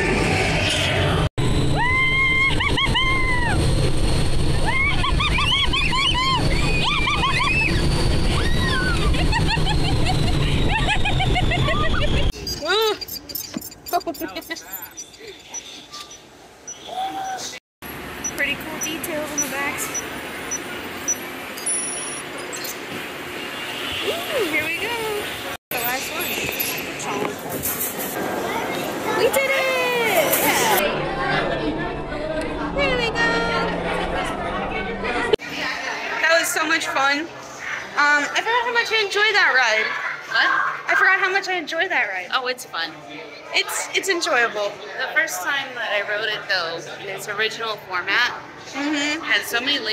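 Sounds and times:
people chattering: 0:11.9 - 0:16.0, 0:24.0 - 0:49.9.

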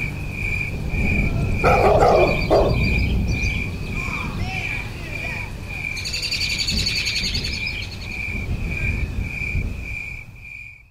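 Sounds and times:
uneven low rumble: 0:00.0 - 0:10.5.

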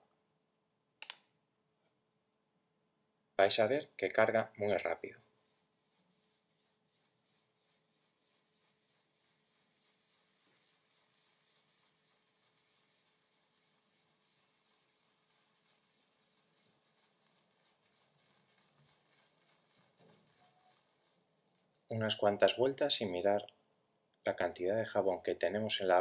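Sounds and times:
shaving brush rubbing on soap: 0:04.6 - 0:22.8.

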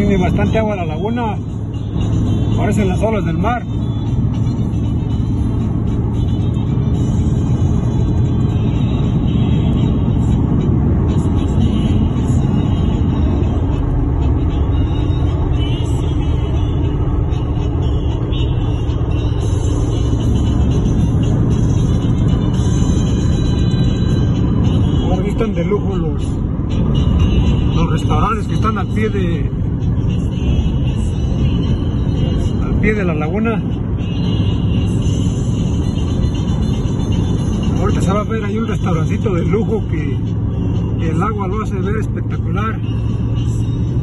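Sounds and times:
car road and wind noise: 0:00.0 - 0:44.0
music playing: 0:00.0 - 0:44.0.

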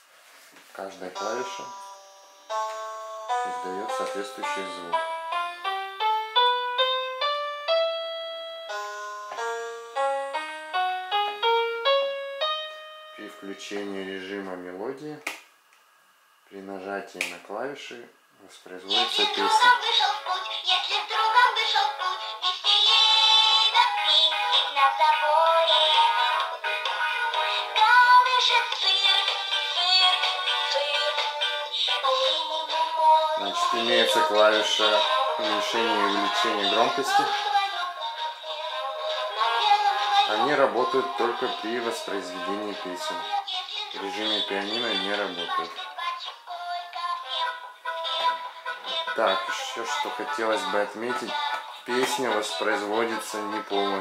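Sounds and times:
children's song from toy speaker: 0:01.1 - 0:05.3, 0:18.8 - 0:54.0.

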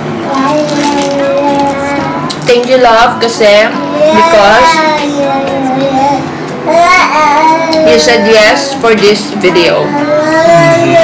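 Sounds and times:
woman speaking: 0:02.4 - 0:04.8, 0:07.8 - 0:10.0
high voice singing: 0:09.8 - 0:11.0.

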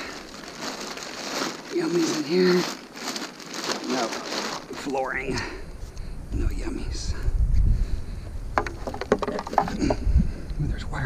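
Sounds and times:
plastic bag rustling and crinkling: 0:00.0 - 0:05.5
wind rumble on microphone: 0:05.6 - 0:11.0.

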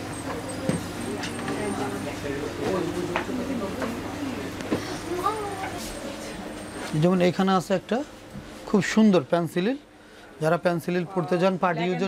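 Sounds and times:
murmur of voices: 0:10.1 - 0:12.0.

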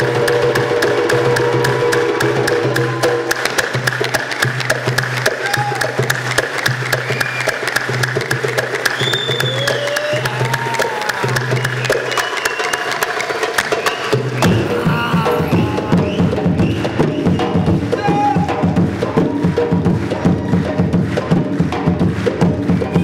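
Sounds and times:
percussion strokes: 0:00.0 - 0:23.0.

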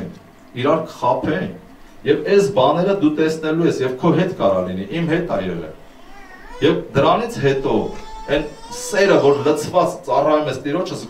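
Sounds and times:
man preaching into a microphone: 0:00.0 - 0:05.8, 0:06.6 - 0:11.0.

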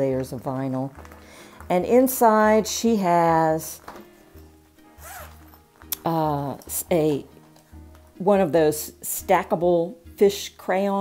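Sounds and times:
zipper being pulled open: 0:04.9 - 0:06.1.

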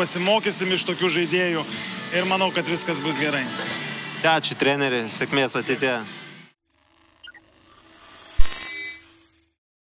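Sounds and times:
short swell: 0:07.7 - 0:09.2.

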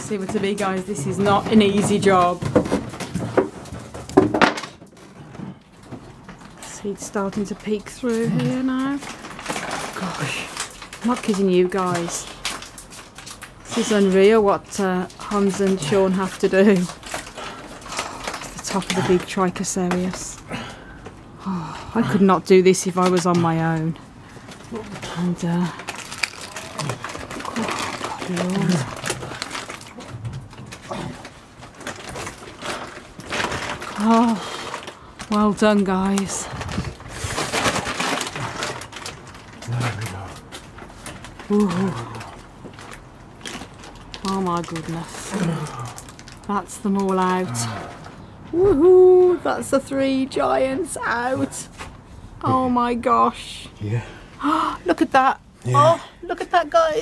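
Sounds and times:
knocks and rustling: 0:00.0 - 0:14.3
person grunting: 0:47.4 - 0:47.8.

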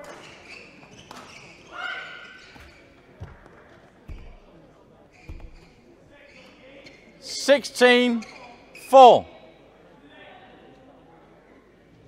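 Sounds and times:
footfalls on court: 0:02.4 - 0:05.9.

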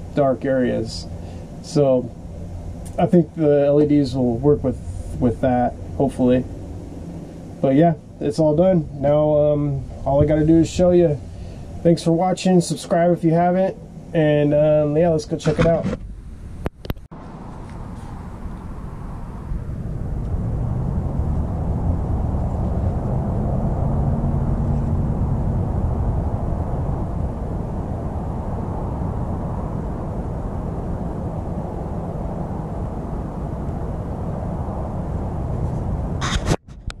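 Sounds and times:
faint hum: 0:00.0 - 0:37.0
low outdoor rumbling: 0:00.0 - 0:37.0.

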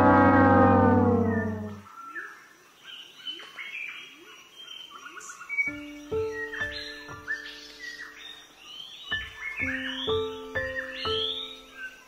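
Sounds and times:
low rising bird call: 0:00.0 - 0:01.9
birds chirping and calling: 0:00.0 - 0:12.0
music: 0:05.6 - 0:12.0.

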